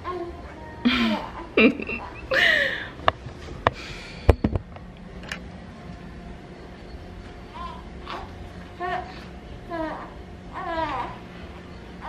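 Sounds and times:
woman laughing: 0.8 - 3.0.

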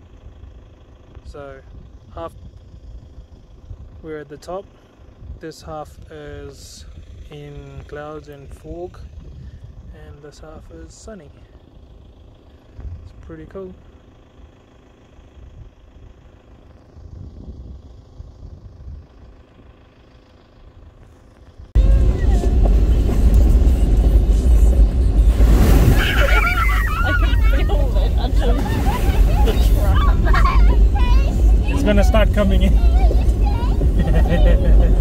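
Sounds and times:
car engine and tyres rumbling: 0.0 - 35.0
people talking: 26.0 - 35.0.

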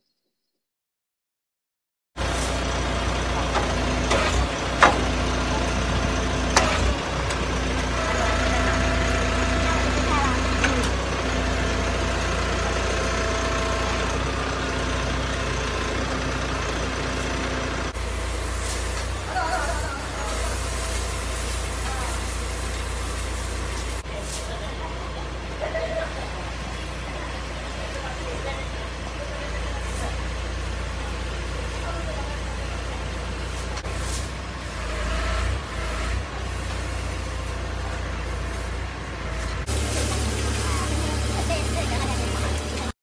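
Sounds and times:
crane handling scrap metal: 2.2 - 42.9
truck engine droning: 2.2 - 43.0.

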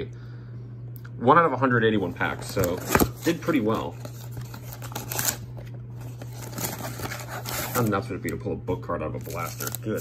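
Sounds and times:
cardboard flap scraping and rustling: 2.3 - 8.0.

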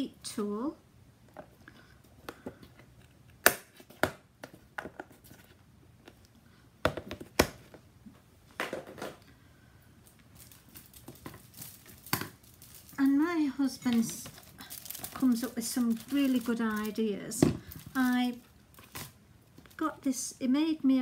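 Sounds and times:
crinkling: 10.0 - 20.0.

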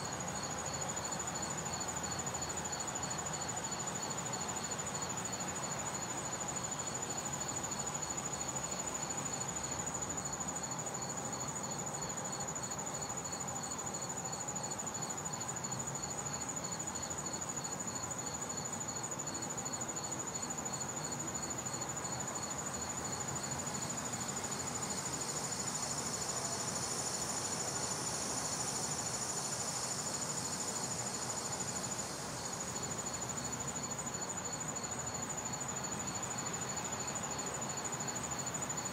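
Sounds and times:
faint outdoor hiss: 0.0 - 38.9.

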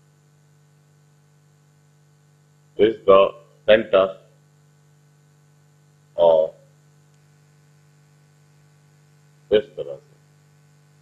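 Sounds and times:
low electrical hum: 0.0 - 11.0
person speaking: 2.8 - 4.2, 6.2 - 6.6, 9.5 - 10.0.

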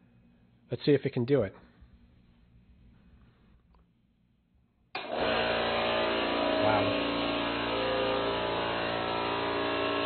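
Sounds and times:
faint hum: 0.0 - 5.0
air compressor motor running: 5.0 - 10.0.

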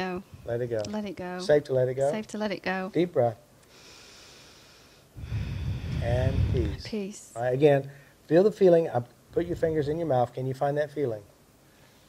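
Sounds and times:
breath drawn in: 3.7 - 6.9
loud exhale into microphone: 3.8 - 6.9.

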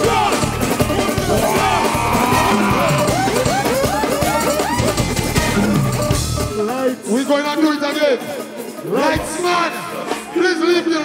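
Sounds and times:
heavy bass: 0.0 - 6.4
pounding drums: 0.0 - 6.5.

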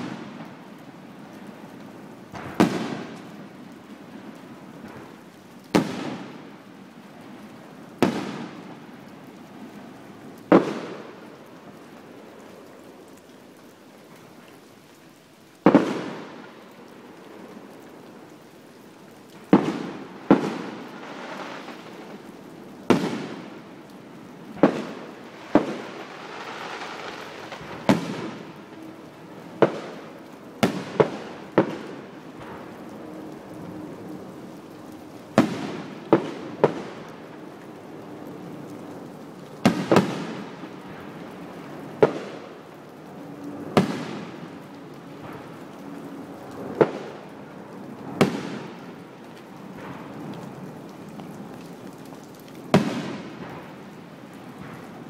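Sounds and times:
fireworks bursting: 2.3 - 3.3, 15.6 - 16.4, 19.5 - 22.2, 22.9 - 23.6, 24.6 - 28.9, 39.6 - 41.0, 52.7 - 53.7.

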